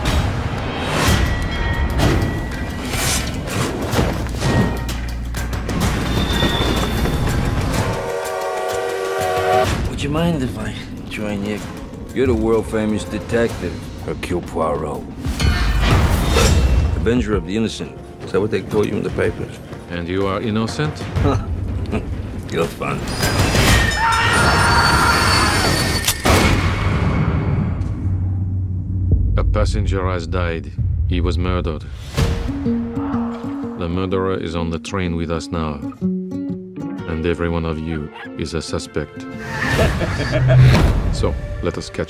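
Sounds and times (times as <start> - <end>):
train squealing: 5.9 - 8.1, 23.1 - 26.2.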